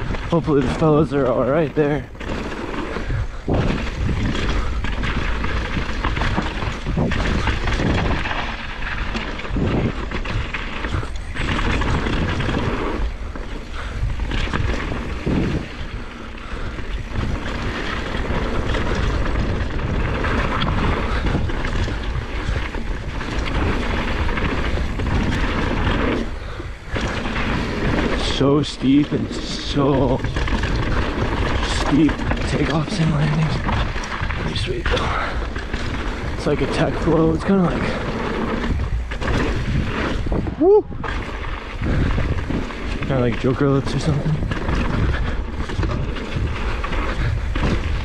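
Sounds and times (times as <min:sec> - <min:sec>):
bike knocking and rattling: 0:00.0 - 0:48.0
bike tyres rolling over gravel: 0:00.0 - 0:48.0
wind buffeting microphone: 0:00.0 - 0:48.0.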